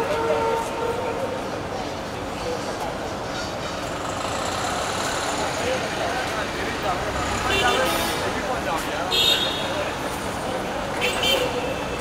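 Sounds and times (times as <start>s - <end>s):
indistinct crowd voices: 0.0s - 12.0s
street traffic noise: 0.0s - 12.0s.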